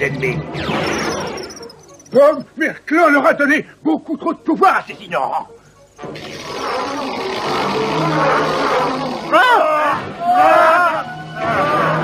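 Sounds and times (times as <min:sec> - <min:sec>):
cartoon fire burst: 0:06.2 - 0:09.4.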